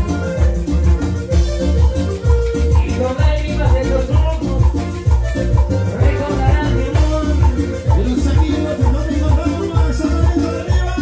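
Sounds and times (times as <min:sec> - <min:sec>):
latin dance music over loudspeakers: 0:00.0 - 0:11.0.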